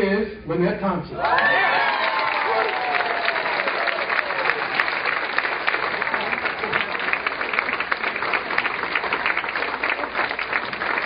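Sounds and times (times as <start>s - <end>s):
audience applauding: 1.2s - 11.0s.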